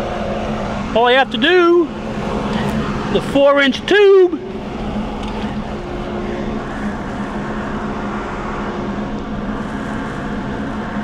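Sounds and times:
dust collection vacuum running: 0.0s - 11.0s.

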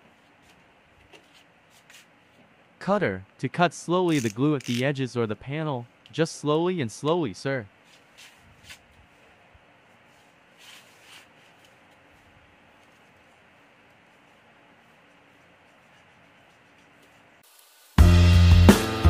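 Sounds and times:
faint steady hiss: 10.0s - 18.0s.

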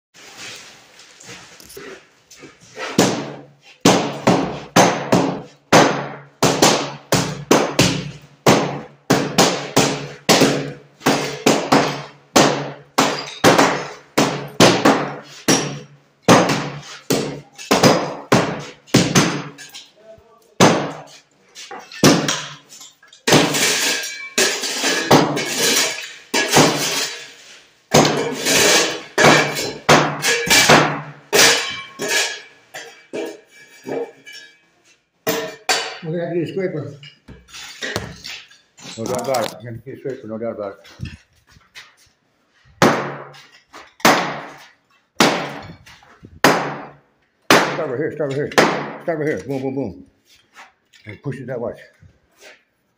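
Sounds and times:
hammer breaking floor tiles: 2.8s - 19.9s, 20.6s - 34.6s, 35.2s - 36.0s, 37.0s - 39.0s, 42.8s - 47.9s, 48.5s - 49.1s.

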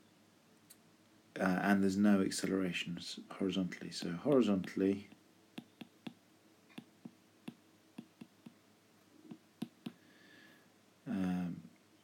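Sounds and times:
stylus tapping on glass screen: 4.0s - 8.6s, 9.3s - 10.0s.

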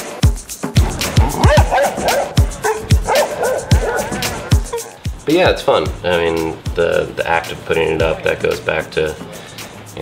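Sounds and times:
music with deep kick drum: 0.0s - 7.3s, 8.0s - 8.5s
dog yipping and whining: 1.2s - 5.0s.

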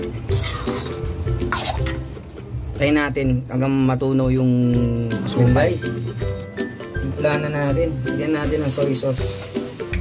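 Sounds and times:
background music: 0.0s - 10.0s
metal ladle scraping wok: 0.3s - 2.0s, 5.8s - 6.5s.

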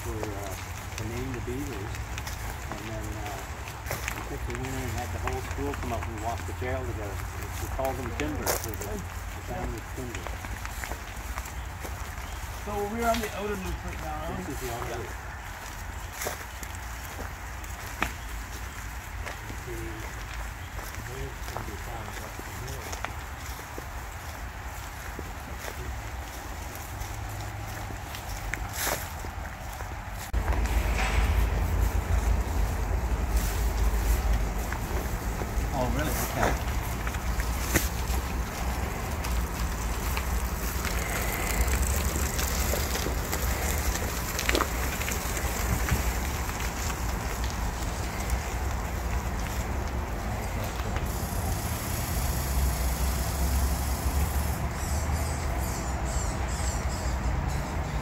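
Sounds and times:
wheels rolling on gravel trail: 0.0s - 58.0s
wind rumble on microphone: 23.6s - 51.4s.

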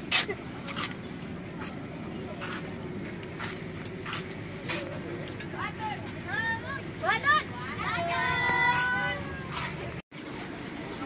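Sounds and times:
bus engine and air conditioning hum: 0.0s - 11.0s
faint passenger voices: 0.0s - 11.0s
girl talking: 5.6s - 9.8s.

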